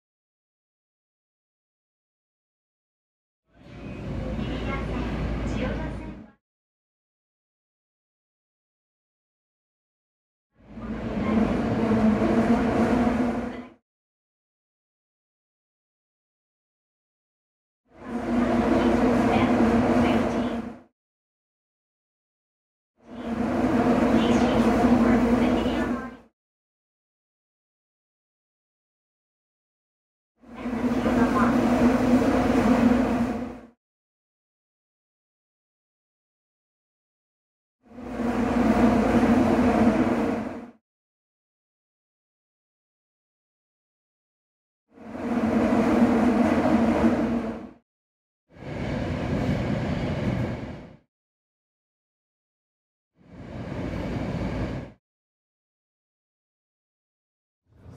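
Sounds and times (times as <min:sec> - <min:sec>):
subway train rumbling: 0:03.5 - 0:06.4, 0:10.6 - 0:13.8, 0:17.9 - 0:20.9, 0:23.0 - 0:26.3, 0:30.4 - 0:33.8, 0:37.9 - 0:40.8, 0:45.0 - 0:47.8, 0:48.5 - 0:51.0, 0:53.2 - 0:55.0
low hum: 0:10.6 - 0:13.8, 0:18.0 - 0:20.8, 0:23.0 - 0:26.2, 0:30.5 - 0:33.7, 0:37.9 - 0:40.8, 0:45.0 - 0:47.8.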